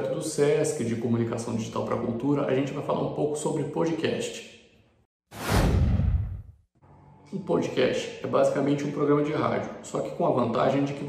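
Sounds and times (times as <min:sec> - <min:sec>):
whoosh sound effect: 0:05.3 - 0:06.6.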